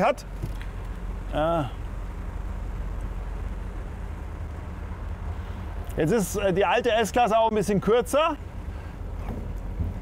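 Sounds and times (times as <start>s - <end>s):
car engines rumbling: 0.0s - 10.0s.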